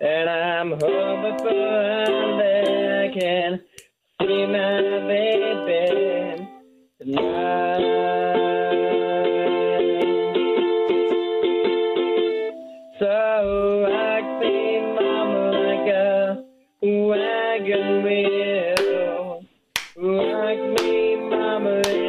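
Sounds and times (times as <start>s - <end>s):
man singing: 0.0s - 11.3s, 13.0s - 22.0s
strummed ukulele: 0.7s - 3.4s, 4.2s - 12.6s, 13.5s - 16.0s, 17.0s - 19.3s, 19.9s - 22.0s.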